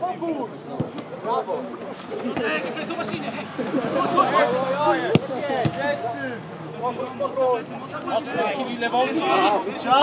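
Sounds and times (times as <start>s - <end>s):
players shouting: 0.0s - 10.0s
football kicked thud: 5.1s - 5.8s.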